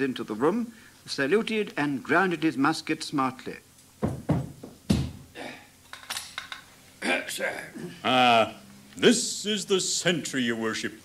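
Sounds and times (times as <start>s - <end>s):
musket butt knocking ground: 4.0s - 5.3s.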